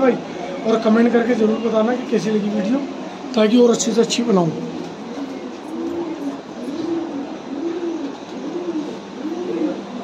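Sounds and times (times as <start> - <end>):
pigeons cooing: 2.8 - 10.0.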